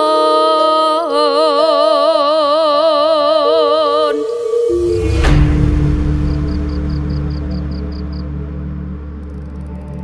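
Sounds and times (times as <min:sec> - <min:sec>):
gamelan music: 0:03.9 - 0:10.0.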